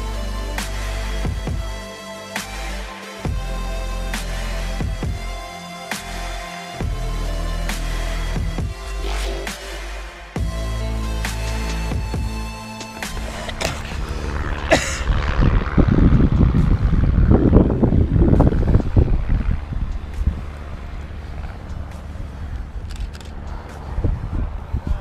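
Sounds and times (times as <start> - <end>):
electronic background music: 0.0 - 25.0
wind buffeting microphone: 12.9 - 25.0.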